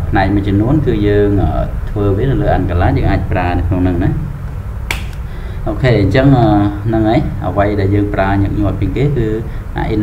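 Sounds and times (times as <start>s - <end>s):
sharp click: 4.9s - 5.3s.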